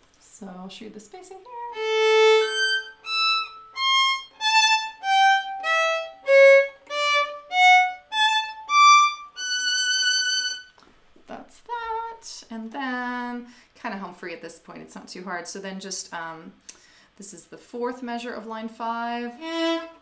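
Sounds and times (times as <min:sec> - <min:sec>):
solo violin bowed notes: 0:01.7 - 0:10.7, 0:19.3 - 0:20.0.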